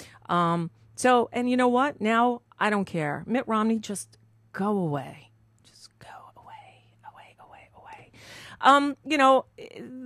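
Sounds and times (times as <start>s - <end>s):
low electrical hum: 0.0s - 10.0s
woman whispering: 5.6s - 8.2s.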